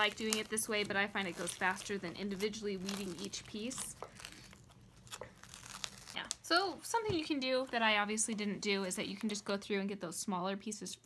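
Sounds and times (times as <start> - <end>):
vinyl peeling off sheet: 0.0 - 6.4
sharp crackles: 0.0 - 6.5.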